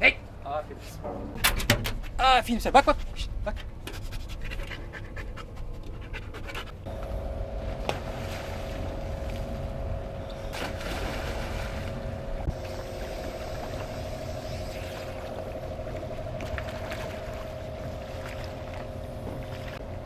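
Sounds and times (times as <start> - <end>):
dog panting: 4.2 - 6.8
outboard motor running: 6.8 - 20.0
water splashing: 7.6 - 19.8.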